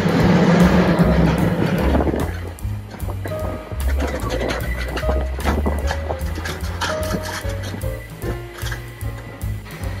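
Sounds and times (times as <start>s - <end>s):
cable car wheels rumbling on rails: 0.0s - 10.0s
jazz music: 0.0s - 10.0s.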